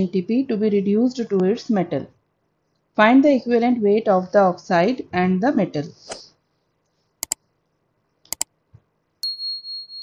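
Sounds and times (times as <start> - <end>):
mouse clicks: 8.3 - 8.5
notification bell ding: 9.2 - 10.0.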